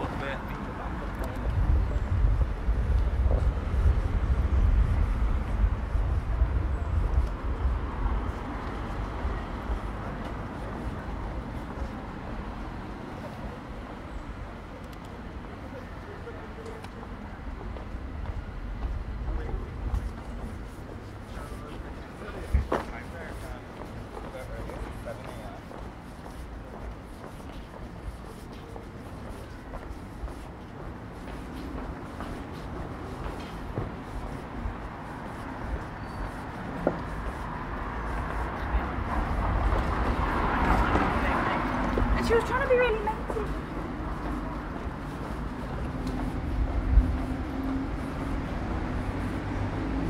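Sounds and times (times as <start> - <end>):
distant traffic rumble: 0.0 - 50.0
indistinct voices of passers-by: 0.0 - 50.0.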